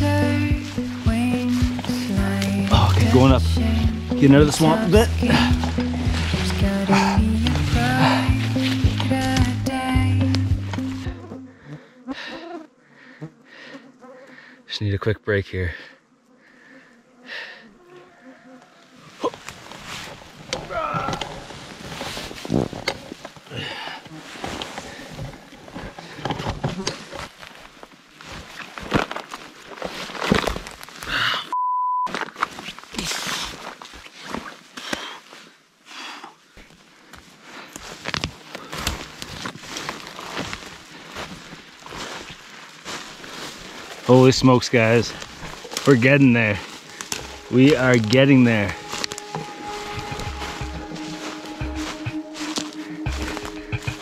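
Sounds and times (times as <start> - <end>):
branches crackling and swishing: 0.0 - 11.1, 18.9 - 23.5, 27.0 - 31.1, 32.1 - 35.6, 36.6 - 54.0
footsteps in brush: 0.0 - 11.4, 19.1 - 26.2, 26.9 - 31.1, 36.6 - 54.0
man grunting: 2.7 - 3.3, 20.7 - 21.3
heavy breathing: 5.2 - 8.7, 11.4 - 14.7, 15.7 - 18.6, 23.5 - 26.5, 31.0 - 31.6, 51.3 - 54.0
steady bleep tone: 31.5 - 32.1, 46.2 - 54.0.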